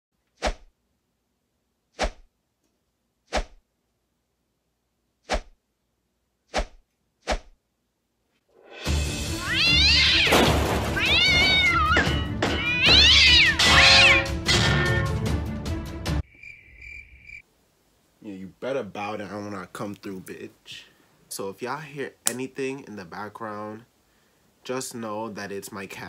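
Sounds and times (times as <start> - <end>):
music: 8.5 - 16.2
cat meowing: 9.3 - 15.2.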